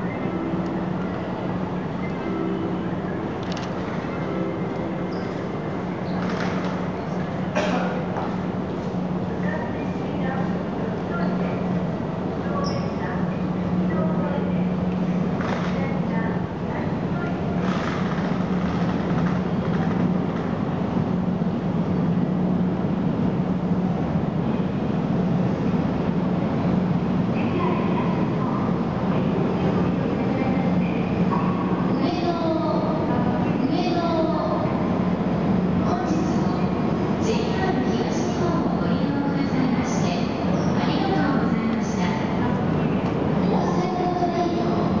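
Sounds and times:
electric locomotive droning: 0:00.0 - 0:45.0
train wheels rumbling: 0:00.0 - 0:45.0.

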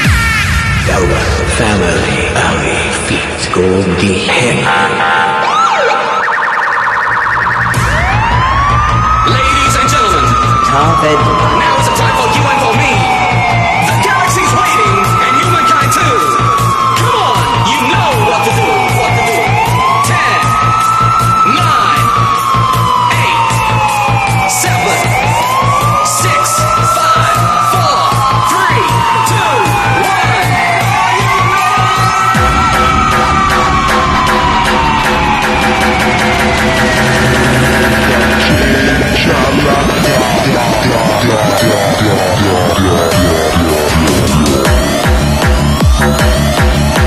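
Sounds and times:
siren-like wail: 0:04.5 - 0:47.0
dance music with steady beat: 0:07.0 - 0:47.0.

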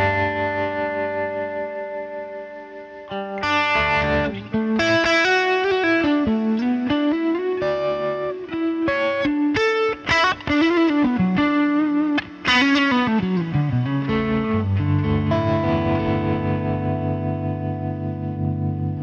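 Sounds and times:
electric guitar lead phrases: 0:00.0 - 0:19.0.

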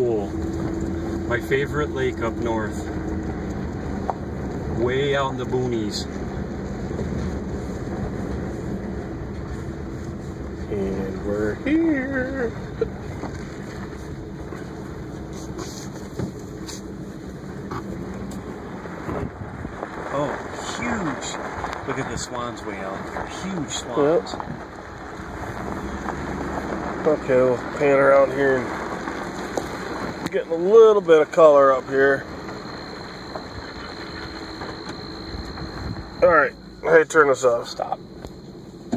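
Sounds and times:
vehicle engine running: 0:00.0 - 0:38.9
faint steady hum: 0:30.2 - 0:38.9.

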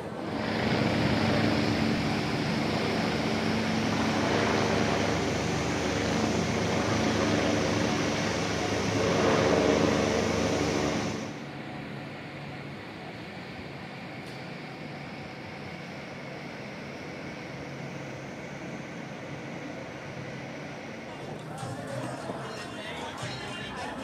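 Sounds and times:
city background noise: 0:00.0 - 0:24.0
helicopter flying overhead: 0:00.0 - 0:24.0.

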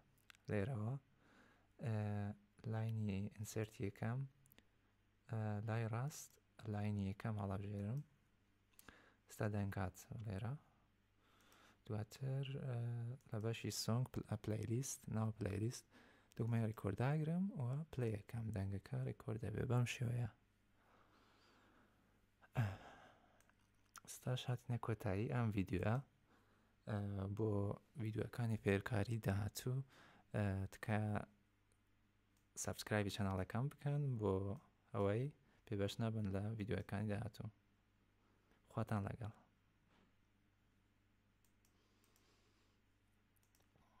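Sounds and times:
faint room hum: 0:00.0 - 0:44.0
man sighing: 0:22.4 - 0:23.3
computer mouse clicks: 0:41.4 - 0:42.4, 0:43.4 - 0:43.8.

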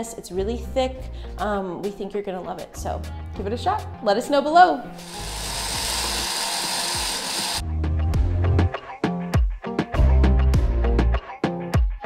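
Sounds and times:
blender whirring: 0:05.0 - 0:07.6
background music with a beat: 0:05.0 - 0:12.0.

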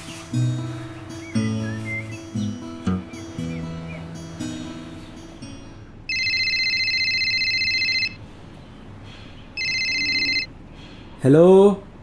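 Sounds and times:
telephone ringing: 0:06.1 - 0:08.2, 0:09.6 - 0:10.5.

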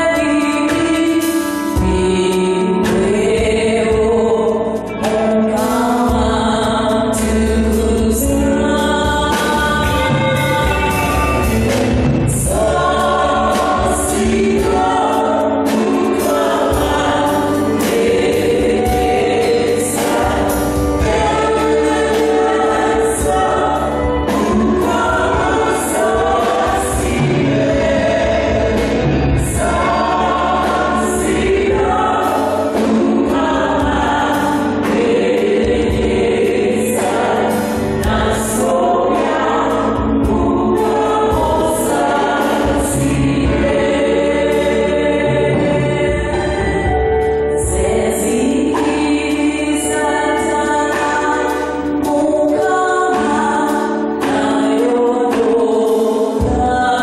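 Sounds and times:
choir singing a hymn: 0:00.0 - 0:57.0
high percussion beat: 0:00.0 - 0:57.0
instrumental accompaniment: 0:00.0 - 0:57.0.

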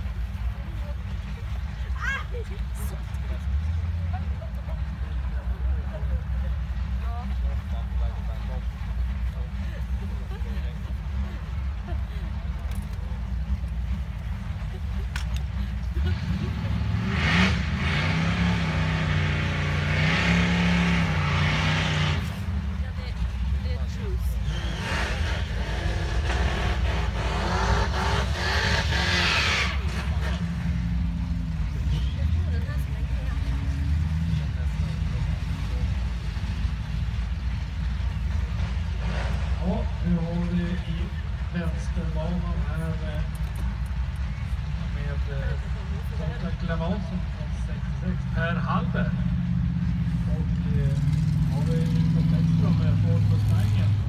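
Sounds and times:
car engines revving: 0:00.0 - 0:54.0.

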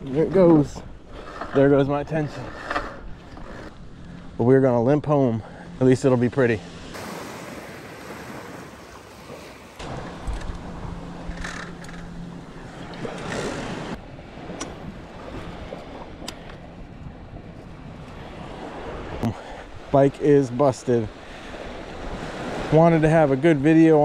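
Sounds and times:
small waves on sandy beach: 0:05.7 - 0:11.3, 0:12.3 - 0:24.0.

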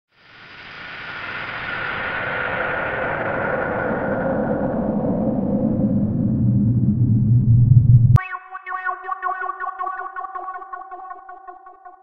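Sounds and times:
low rumbling whoosh: 0:02.1 - 0:08.2
electronic chord with echo: 0:08.2 - 0:12.0.

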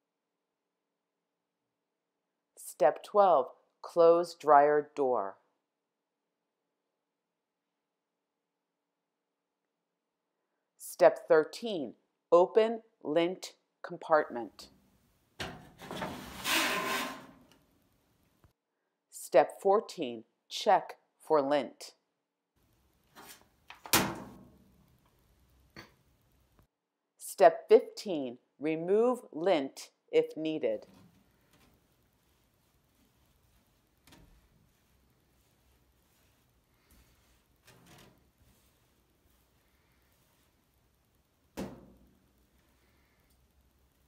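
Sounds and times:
plastic scraping against plastic: 0:15.6 - 0:17.6.

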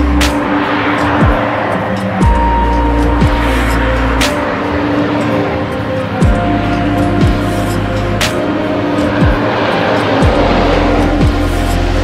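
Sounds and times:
electronic music: 0:00.0 - 0:12.0.

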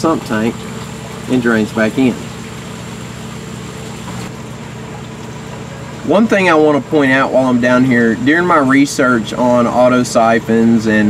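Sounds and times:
low machine hum: 0:00.0 - 0:11.0
running water hiss: 0:00.0 - 0:11.0.

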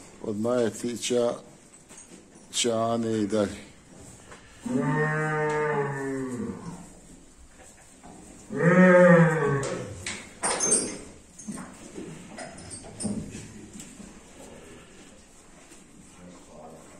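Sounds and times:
bull mooing: 0:04.5 - 0:06.8, 0:08.5 - 0:10.0.

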